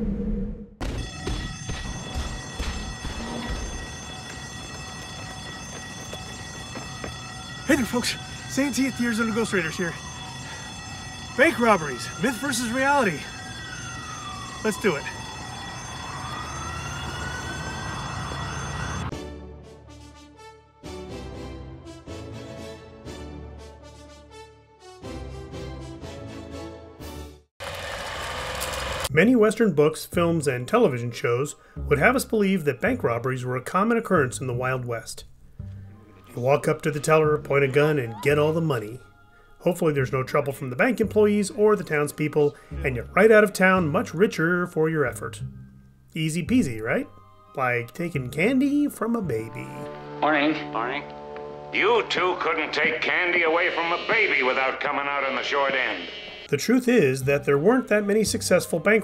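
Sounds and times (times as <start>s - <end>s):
theme music: 0.8s - 27.5s, 35.6s - 59.0s
steady high-pitched tones: 1.2s - 19.1s
film projector whirring clatter: 27.6s - 29.1s.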